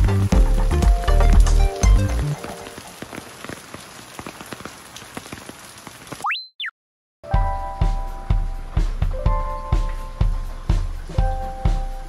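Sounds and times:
background music: 0.0 - 2.8, 7.3 - 12.0
steady rain falling: 0.0 - 6.3, 7.8 - 12.0
raindrops ticking: 0.0 - 6.4.

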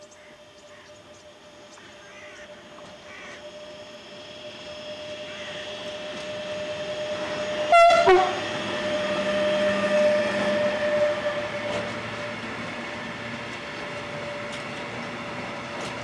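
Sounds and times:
electric locomotive hauling train: 0.0 - 16.0
loud train horn blast: 5.0 - 12.0.

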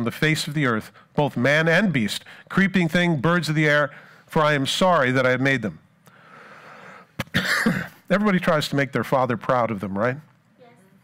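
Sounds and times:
man coughing: 7.2 - 8.1.

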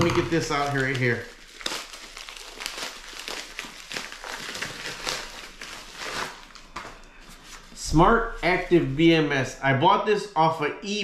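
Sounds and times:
plastic bag crinkling: 0.0 - 7.8.

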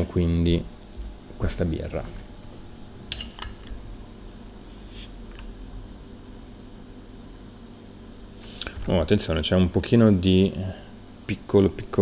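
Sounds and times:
gas hissing from bottle: 4.6 - 5.3.

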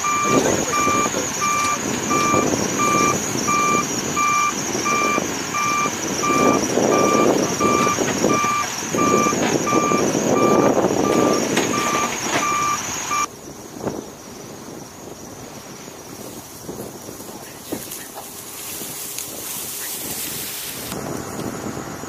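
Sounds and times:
forklift backup alarm beeping: 0.0 - 13.3
forklift engine running: 0.0 - 13.3.

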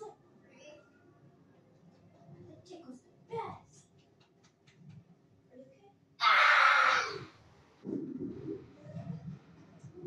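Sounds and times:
quiet low sounds: 7.3 - 10.0.

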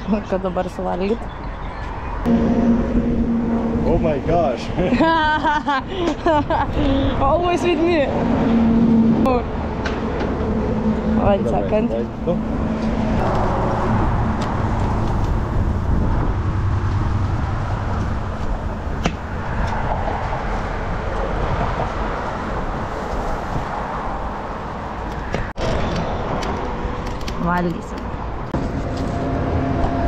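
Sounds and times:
road traffic rumble: 0.0 - 30.0.

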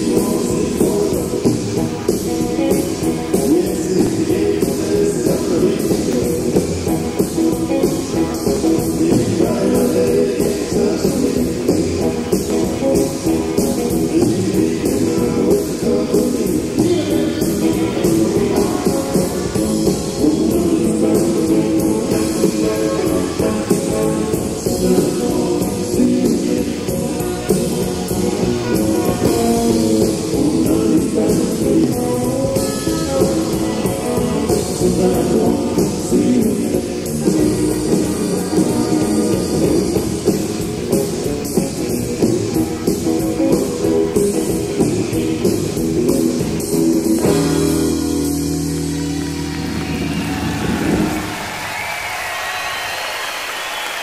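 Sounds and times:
bass guitar: 0.0 - 53.3
electric guitars: 0.0 - 54.0
recording hiss: 0.0 - 54.0
steady drum beat: 0.0 - 54.0
audience applause: 48.8 - 54.0.

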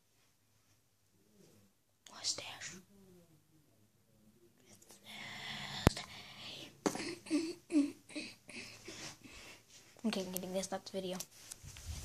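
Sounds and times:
boy whispering: 1.4 - 3.4, 4.6 - 8.9.

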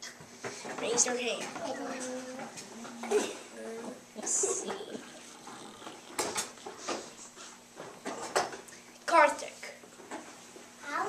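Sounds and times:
child's voice: 0.8 - 2.6, 10.8 - 11.0.

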